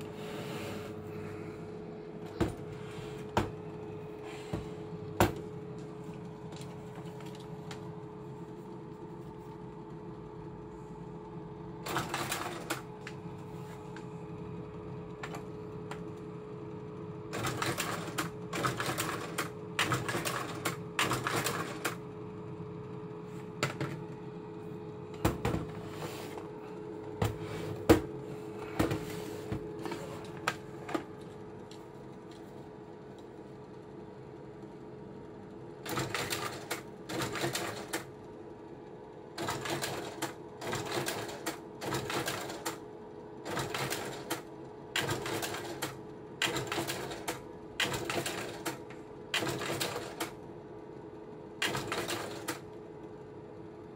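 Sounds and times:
projector fan hum: 0.0 - 53.9.

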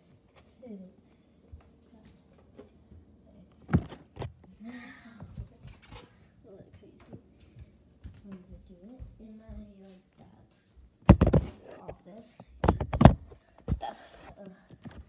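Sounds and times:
girl's voice: 8.2 - 10.5, 11.7 - 12.6, 13.7 - 14.8.

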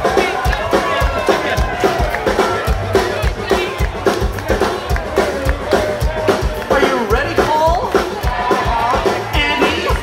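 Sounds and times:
audience clapping along: 0.0 - 10.0
rock band playing live: 0.0 - 10.0.

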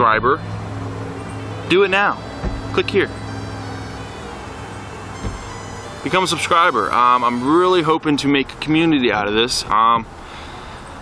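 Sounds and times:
low mechanical hum: 0.4 - 7.8
faint steady tone: 2.4 - 7.8.

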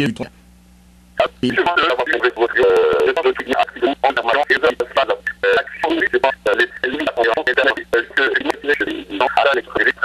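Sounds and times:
man talking over telephone: 1.2 - 10.0.

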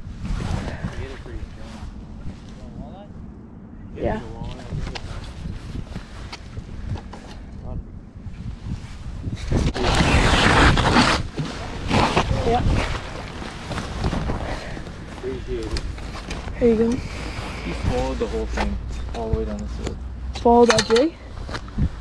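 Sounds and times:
wind buffeting microphone: 0.0 - 22.0
jacket fabric rustling: 8.4 - 19.9.

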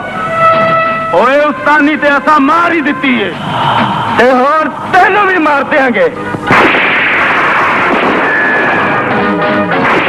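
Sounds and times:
dense rush of noise: 2.8 - 9.2
gunshot: 6.4 - 9.2, 9.8 - 10.0.

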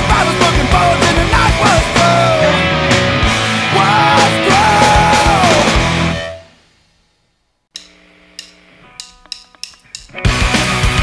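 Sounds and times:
full band playing: 0.0 - 6.4
punk rock song: 0.0 - 6.5, 8.9 - 11.0.

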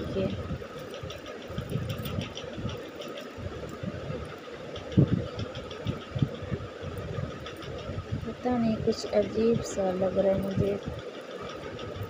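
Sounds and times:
steady faint hum: 0.0 - 12.0.

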